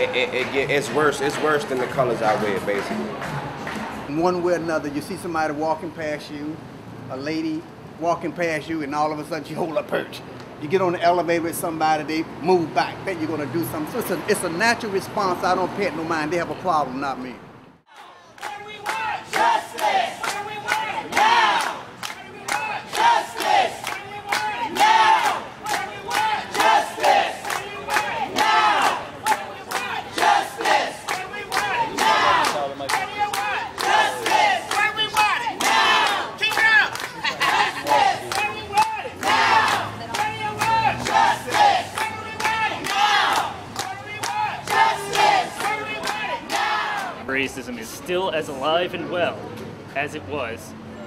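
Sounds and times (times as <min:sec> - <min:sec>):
crowd shouting and chanting: 0:17.9 - 0:47.4.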